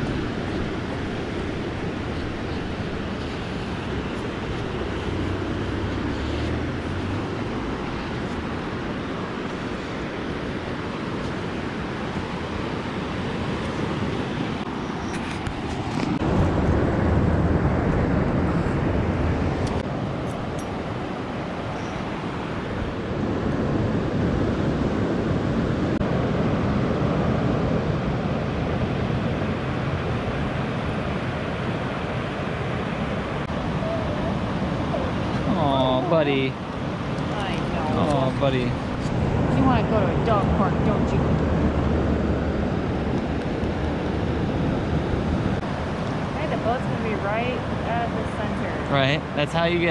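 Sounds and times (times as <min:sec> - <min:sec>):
ocean surf on sandy beach: 0:00.0 - 0:49.9.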